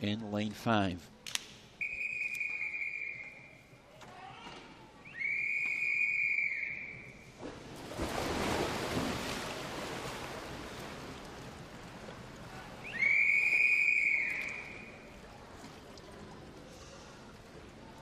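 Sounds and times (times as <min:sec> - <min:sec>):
referee's whistle blasts: 0:01.8 - 0:03.5, 0:05.1 - 0:07.1, 0:12.9 - 0:14.9
swimmers splashing into pool: 0:07.4 - 0:15.2.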